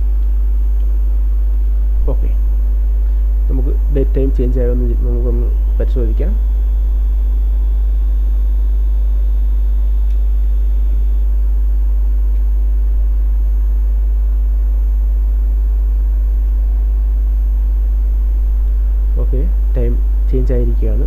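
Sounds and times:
low electrical mains hum: 0.0 - 21.0.

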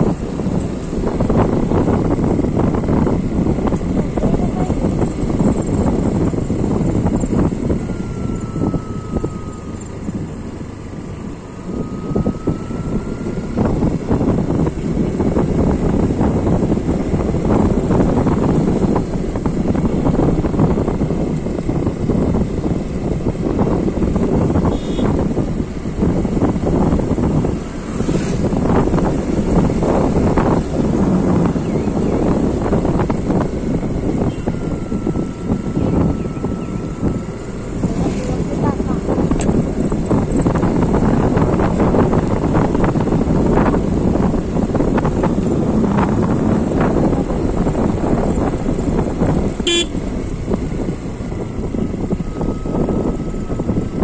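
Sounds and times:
vehicle running noise: 0.0 - 54.0
wind buffeting microphone: 0.0 - 54.0.

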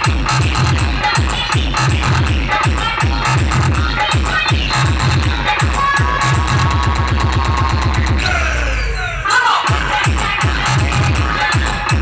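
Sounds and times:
electronic dance music: 0.0 - 12.0
deep bass hits: 4.9 - 9.2.

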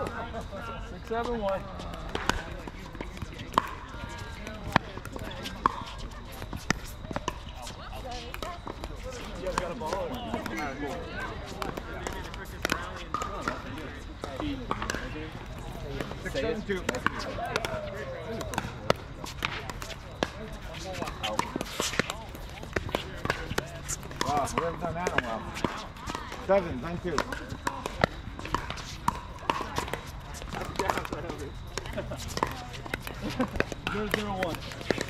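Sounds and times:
background chatter: 0.0 - 35.0
balls bouncing on hard court: 1.0 - 35.0.

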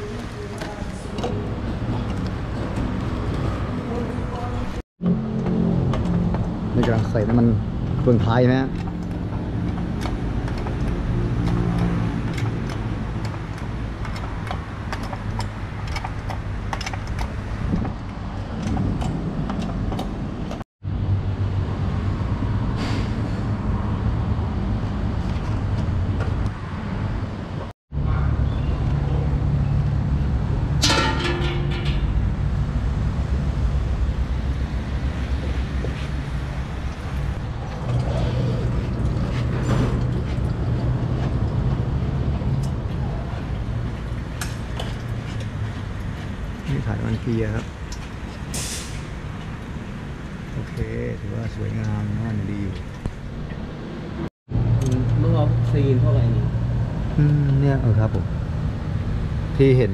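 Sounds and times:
tools clicking and clattering: 30.8 - 32.2.

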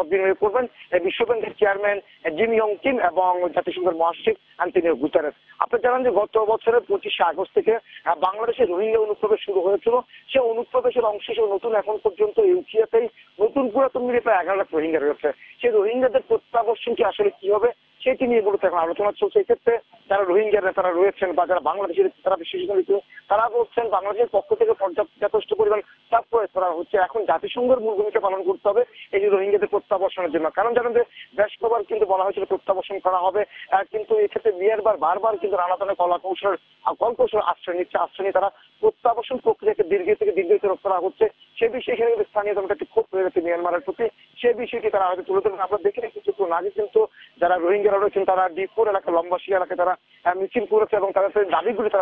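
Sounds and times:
news reporter speaking: 0.0 - 52.0
person talking over telephone: 0.0 - 52.0.

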